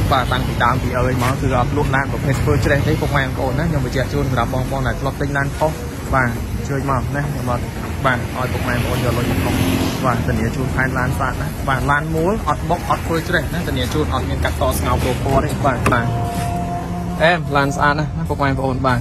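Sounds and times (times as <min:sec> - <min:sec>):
person talking: 0:07.2 - 0:16.5.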